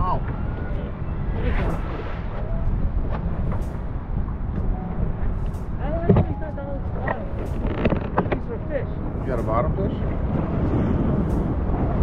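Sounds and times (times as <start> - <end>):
water noise: 0.0 - 12.0
wind noise: 0.0 - 12.0.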